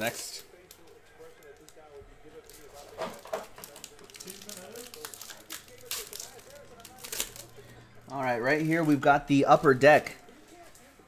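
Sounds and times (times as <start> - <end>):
faint voices: 0.0 - 11.0
plastic packaging crinkling: 0.6 - 7.8.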